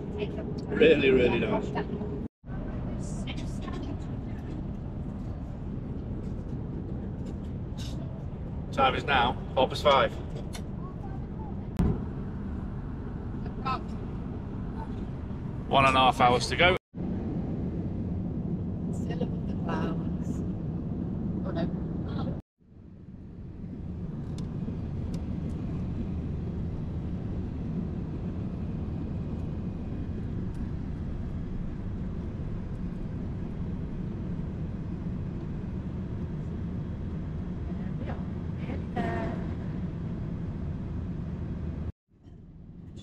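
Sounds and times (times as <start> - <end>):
airliner cabin drone: 0.0 - 43.0
person speaking: 0.2 - 2.0.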